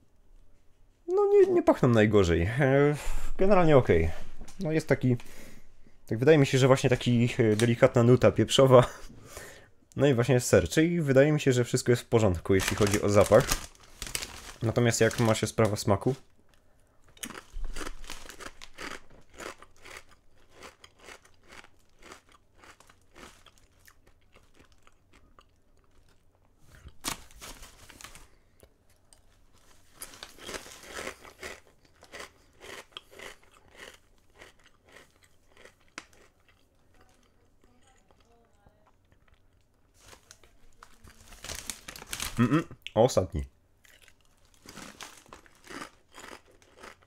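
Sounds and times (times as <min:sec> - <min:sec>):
person crunching potato chips: 0:12.2 - 0:16.0, 0:17.1 - 0:28.4, 0:29.0 - 0:38.4, 0:39.0 - 0:42.6, 0:43.8 - 0:47.0.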